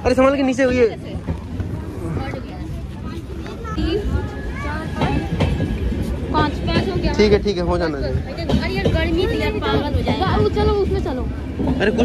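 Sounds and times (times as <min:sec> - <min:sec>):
people's voices: 0:00.0 - 0:12.0
train rumbling: 0:00.0 - 0:12.0.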